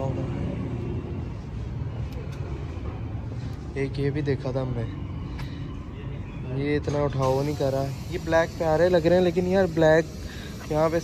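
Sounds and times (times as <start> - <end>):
low rumble of road vehicles: 0.0 - 11.0.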